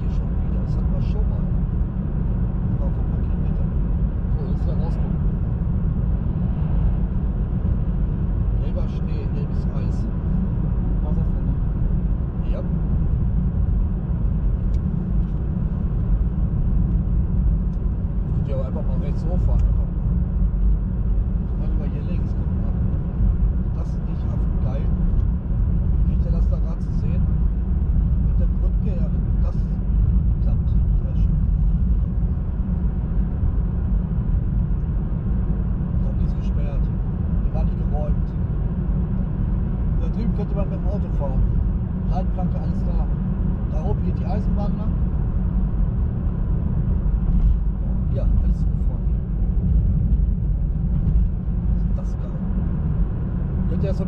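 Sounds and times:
road and tyre rumble: 0.0s - 54.0s.

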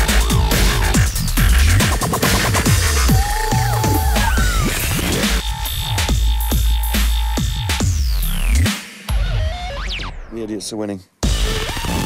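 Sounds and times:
dubstep track with heavy sub-bass: 0.0s - 10.2s, 11.2s - 12.0s.

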